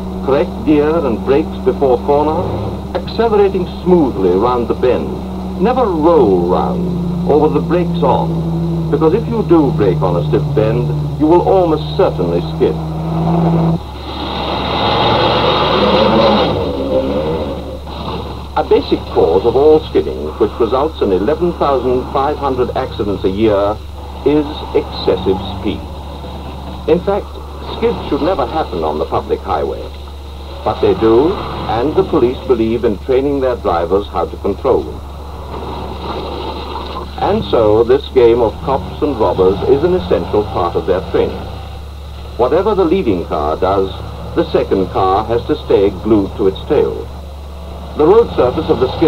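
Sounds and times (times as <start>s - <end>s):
car engine: 0.0s - 49.0s
constant low hum: 0.0s - 49.0s
tyres rushing on wet surface: 0.0s - 49.0s.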